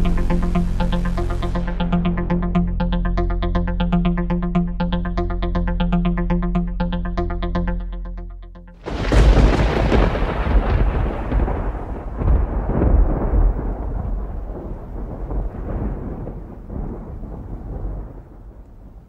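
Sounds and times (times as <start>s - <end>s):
loud rolling rumble: 8.8s - 18.6s.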